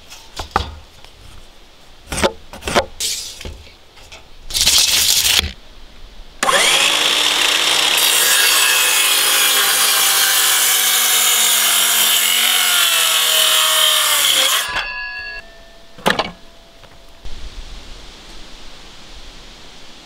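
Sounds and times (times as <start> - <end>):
circular saw cutting wood: 6.4 - 15.4
saw blade winding down: 6.4 - 15.4.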